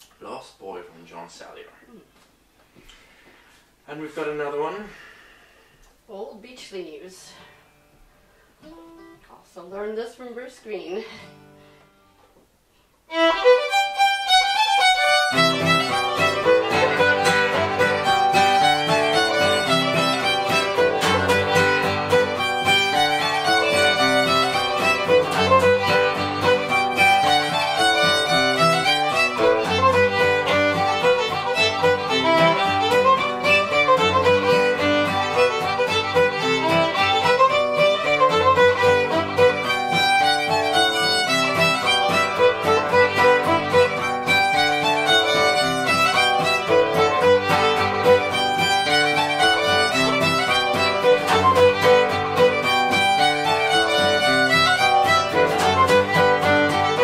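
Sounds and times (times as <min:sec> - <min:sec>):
lower accompanying instrument: 0:13.1 - 0:57.0
solo fiddle tune: 0:13.1 - 0:57.0.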